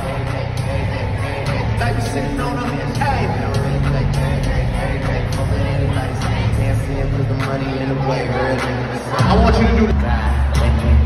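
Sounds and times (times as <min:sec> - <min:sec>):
booming bass line: 0:00.0 - 0:08.1, 0:09.2 - 0:11.0
loud hip-hop music: 0:00.0 - 0:11.0
voices over music: 0:00.0 - 0:11.0.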